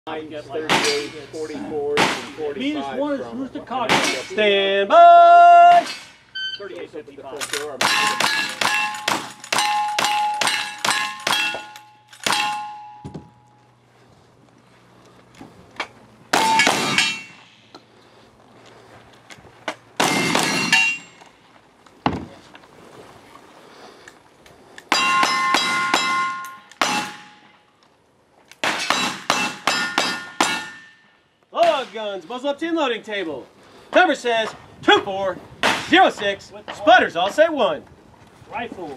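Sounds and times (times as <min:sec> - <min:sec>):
ringing steel targets: 0:00.7 - 0:01.4, 0:03.9 - 0:04.4, 0:05.7 - 0:06.8, 0:07.4 - 0:13.7, 0:16.3 - 0:17.8, 0:20.0 - 0:21.3, 0:24.9 - 0:27.6, 0:28.6 - 0:32.0.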